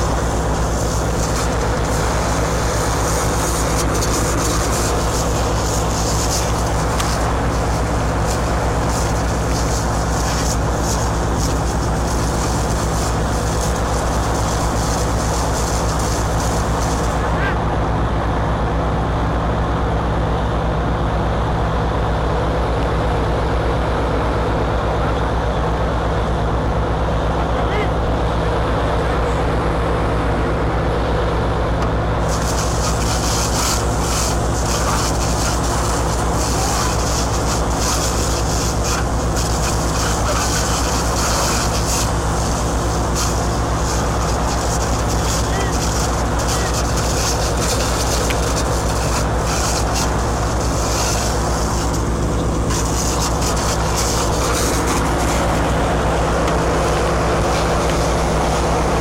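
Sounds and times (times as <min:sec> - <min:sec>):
large engine humming: 0:00.0 - 0:59.0
high hiss: 0:32.2 - 0:58.7.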